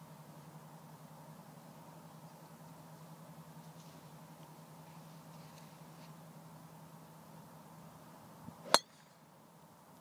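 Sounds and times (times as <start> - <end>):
golf club striking ball: 8.6 - 9.2.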